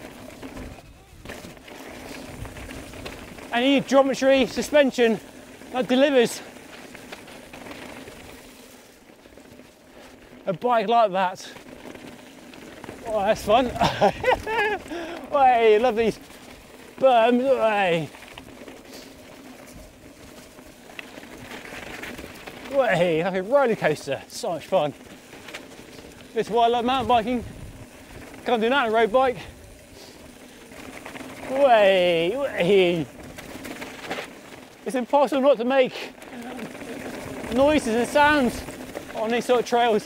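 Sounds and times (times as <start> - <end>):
bike clicks and rattles: 0.0 - 40.0
bike tyres rumbling on rough trail: 0.0 - 40.0.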